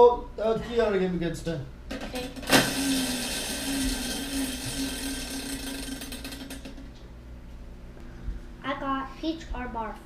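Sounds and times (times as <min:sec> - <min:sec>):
plastic spinner clicking: 0:02.2 - 0:06.9.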